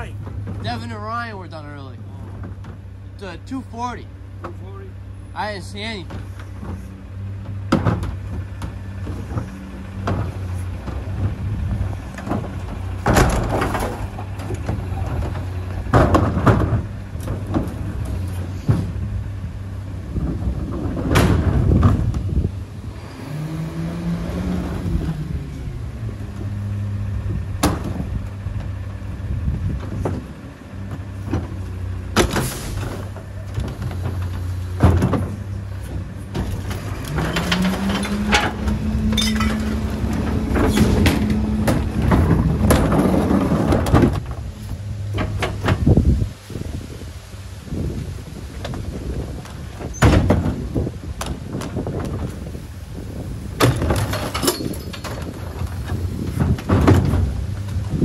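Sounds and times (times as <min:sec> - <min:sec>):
diesel engine idling: 0:00.0 - 0:21.0, 0:24.1 - 0:49.8
hydraulic packer compacting: 0:00.0 - 0:58.0
recycling clattering: 0:00.0 - 0:58.0
carts banging into hopper: 0:06.0 - 0:19.0, 0:20.1 - 0:22.3, 0:29.8 - 0:44.5, 0:48.6 - 0:52.5, 0:53.5 - 0:58.0.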